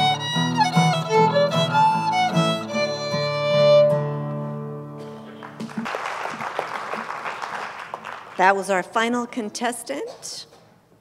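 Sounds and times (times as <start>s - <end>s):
fiddle and acoustic guitars chord: 0.0s - 5.5s
audience applause: 5.2s - 8.4s.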